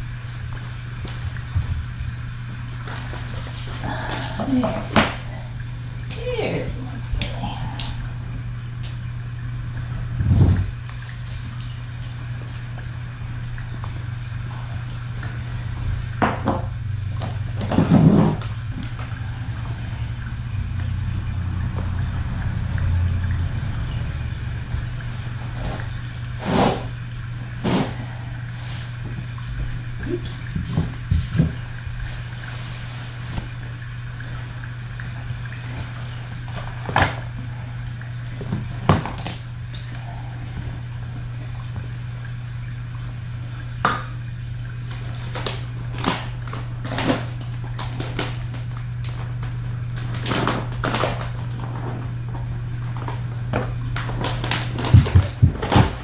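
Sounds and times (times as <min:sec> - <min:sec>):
steady low hum: 0:00.0 - 0:56.0
knocks and rustles of handling: 0:28.7 - 0:34.4.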